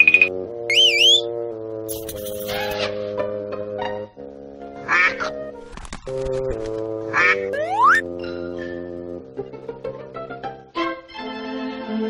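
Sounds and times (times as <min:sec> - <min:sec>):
tone gliding up in pitch: 0:00.0 - 0:01.3.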